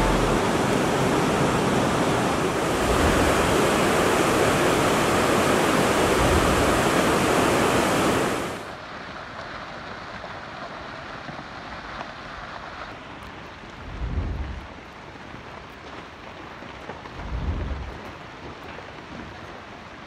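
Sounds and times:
river in flood rushing: 0:00.0 - 0:20.0.

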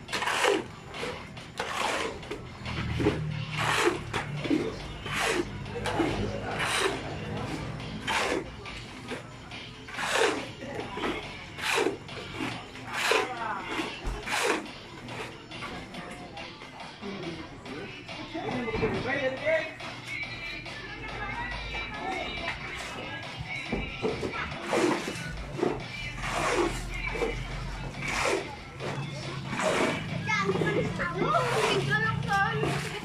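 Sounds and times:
knocks and scrapes: 0:00.1 - 0:09.3, 0:22.8 - 0:33.0
wet concrete rushing: 0:01.6 - 0:08.4.

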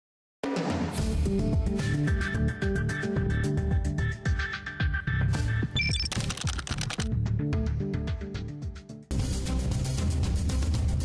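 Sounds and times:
fast dry clicks like typing: 0:05.8 - 0:07.1.

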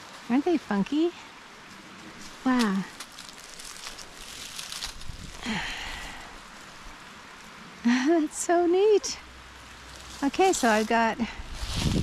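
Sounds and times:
outdoor background hiss: 0:00.0 - 0:12.0
woman speaking: 0:00.3 - 0:01.2, 0:02.4 - 0:03.0, 0:07.9 - 0:09.2, 0:10.2 - 0:11.4.

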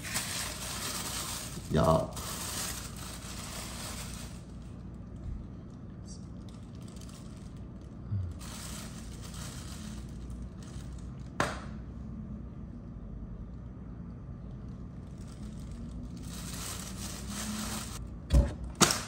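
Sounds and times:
plastic bag rustling: 0:00.0 - 0:05.6, 0:06.3 - 0:11.4, 0:15.0 - 0:18.0.

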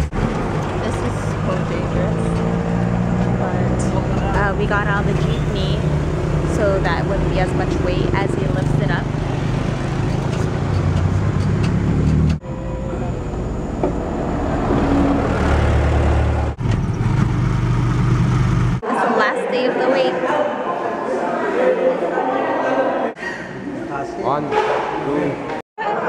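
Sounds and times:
street traffic rumble: 0:00.0 - 0:18.8
indistinct voices in large room: 0:18.8 - 0:26.0.

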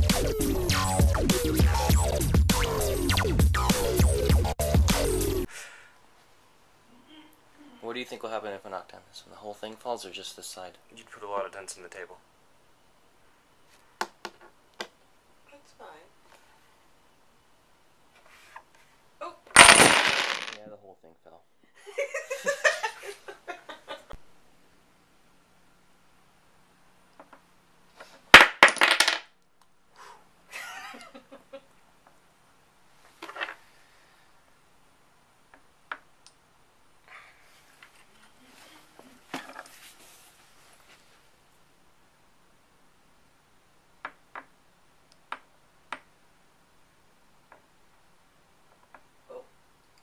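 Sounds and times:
dominoes clattering: 0:19.6 - 0:20.6, 0:28.3 - 0:29.3.

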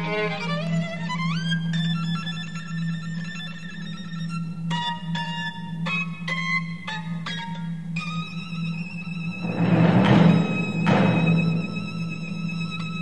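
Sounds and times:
solo violin gliding: 0:00.0 - 0:06.3, 0:08.1 - 0:13.0
steady low hum: 0:00.0 - 0:13.0
ringing struck notes: 0:08.0 - 0:13.0.

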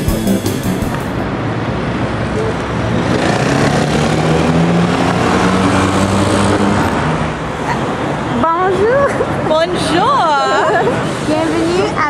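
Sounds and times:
passing road vehicles: 0:00.0 - 0:12.0.

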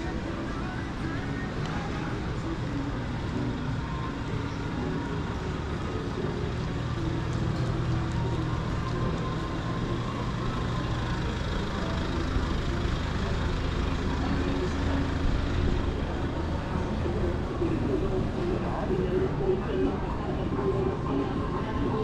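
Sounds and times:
city bustle: 0:00.0 - 0:22.0
low vehicle hum: 0:00.0 - 0:22.0
voices of passersby: 0:00.0 - 0:22.0.

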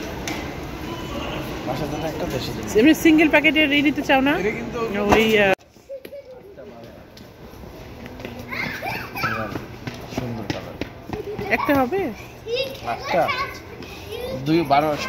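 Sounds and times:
child calling out and chattering: 0:08.4 - 0:09.8.

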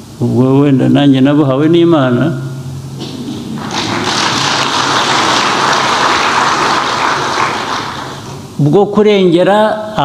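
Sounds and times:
audience applauding: 0:03.6 - 0:08.5.

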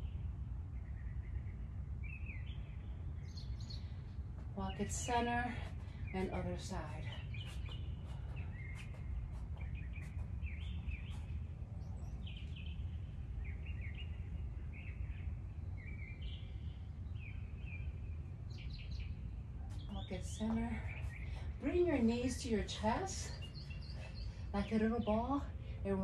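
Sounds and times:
low background rumble: 0:00.0 - 0:26.0
birds chirping: 0:00.8 - 0:26.0.

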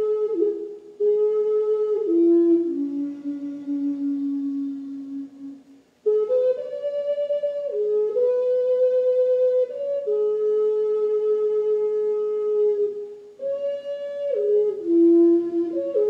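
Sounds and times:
slow wind instrument melody: 0:00.0 - 0:16.0.

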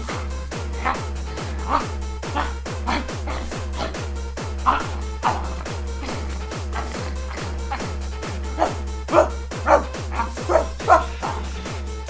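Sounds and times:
loud bark-like cries: 0:00.0 - 0:11.6.

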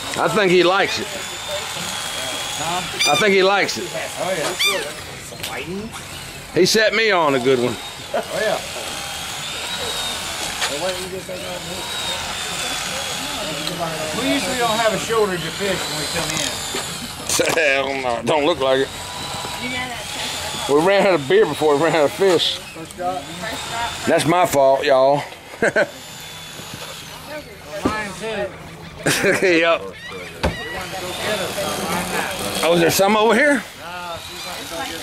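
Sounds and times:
mechanical whirr: 0:00.0 - 0:24.6, 0:25.6 - 0:28.6, 0:30.3 - 0:35.0
person laughing: 0:25.5 - 0:26.0, 0:29.0 - 0:29.7
indistinct voices: 0:26.2 - 0:35.0.

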